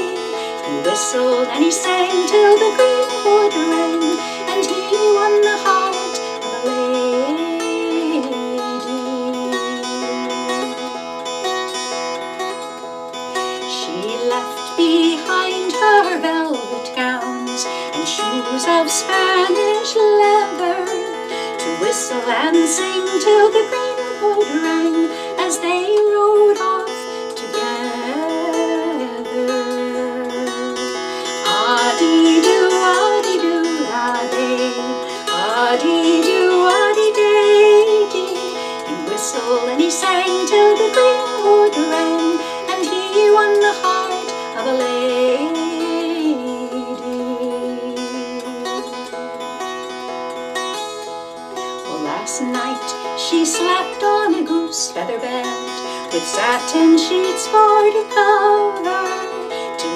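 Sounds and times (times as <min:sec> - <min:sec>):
mountain dulcimer strummed: 0:00.0 - 0:59.9.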